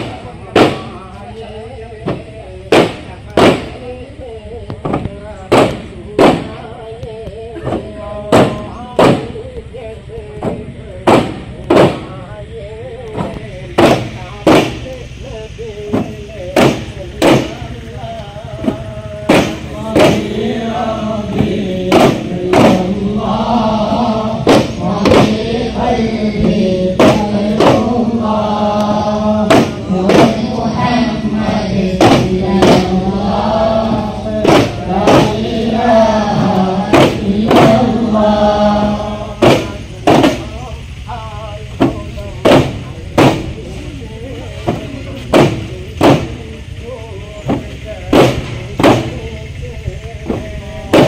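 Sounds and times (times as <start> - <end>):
crowd voices: 0.0 - 51.0
firecrackers banging: 0.0 - 51.0
men chanting in unison: 0.0 - 51.0
frame drum strike: 15.9 - 17.6, 18.6 - 40.6, 41.7 - 43.6, 44.6 - 46.4, 47.4 - 49.2.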